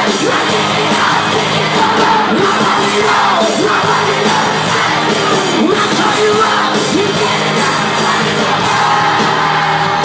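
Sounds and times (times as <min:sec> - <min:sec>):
crowd yelling along: 0:00.0 - 0:10.0
live pop-rock band: 0:00.0 - 0:10.0
sung vocals: 0:00.0 - 0:10.0.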